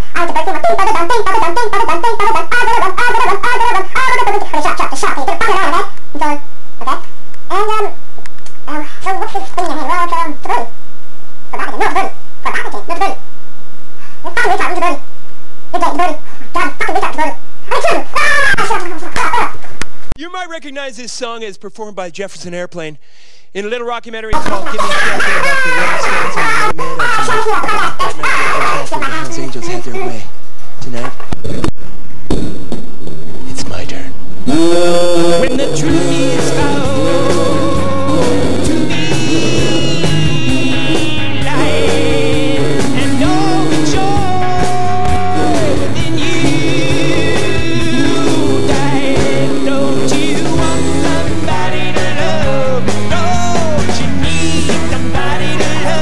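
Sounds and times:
high-pitched garbled voice chattering: 0.1s - 8.0s, 8.7s - 10.7s, 11.5s - 13.2s, 14.2s - 15.0s, 15.7s - 19.6s, 24.4s - 29.5s, 34.5s - 51.4s
loud sharp thumps: 31.4s - 33.2s
short squeaky syllables: 34.5s - 51.3s.

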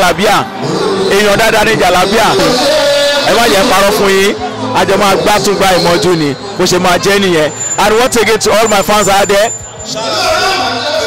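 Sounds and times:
man talking into a microphone: 0.0s - 9.6s.

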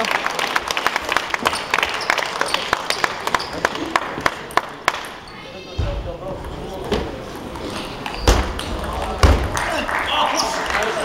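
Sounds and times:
spectators chatting: 0.0s - 11.0s.

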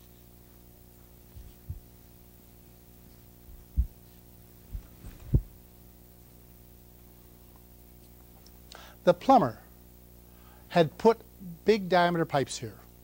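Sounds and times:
low electrical hum: 0.0s - 13.0s
dull low thumps: 1.4s - 1.9s, 3.5s - 4.0s, 4.7s - 5.6s.

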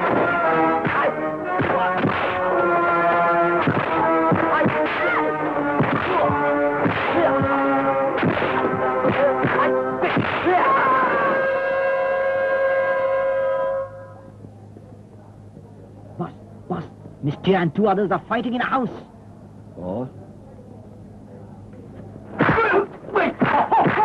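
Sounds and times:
punch and whack sound effects: 0.0s - 2.4s, 3.6s - 5.1s, 5.8s - 7.6s, 8.2s - 10.7s.

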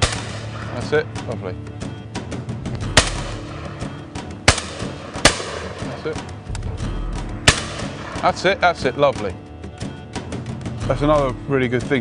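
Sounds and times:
shotgun shots: 0.0s - 0.8s, 2.8s - 3.8s, 4.4s - 6.2s, 7.4s - 8.5s
background music: 0.0s - 12.0s.

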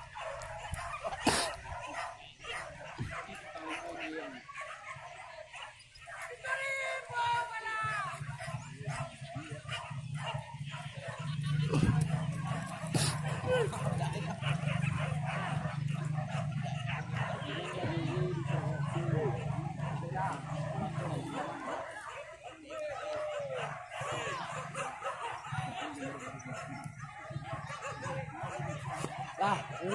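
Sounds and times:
dogs barking and yelping: 0.0s - 29.9s.

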